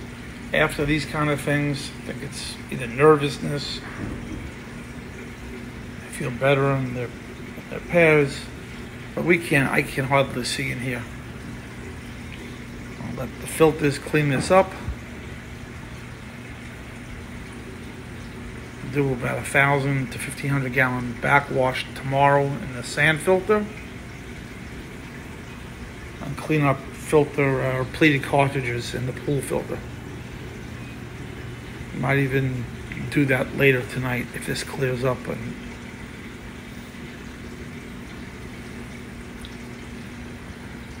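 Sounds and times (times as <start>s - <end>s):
aquarium water circulating: 0.0s - 41.0s.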